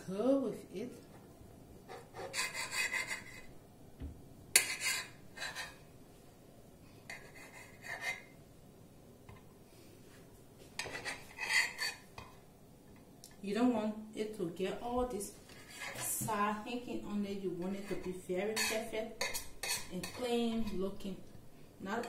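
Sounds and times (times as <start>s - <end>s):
knife sawing through bread: 1.9s - 3.5s.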